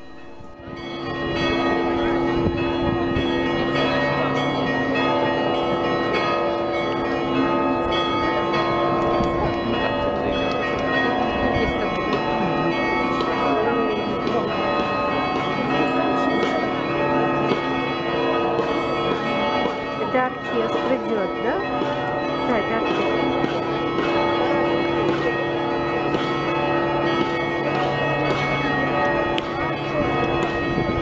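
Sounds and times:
church bells pealing: 0.0s - 31.0s.

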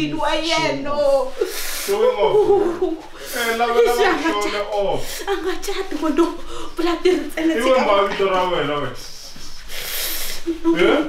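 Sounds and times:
rasping hissing rub: 9.3s - 10.5s.

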